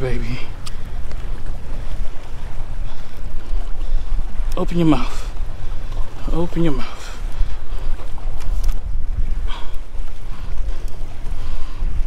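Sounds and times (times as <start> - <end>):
choppy water: 0.0 - 12.0
wind buffeting microphone: 0.0 - 12.0
faint clicks: 0.5 - 1.6, 7.3 - 11.4.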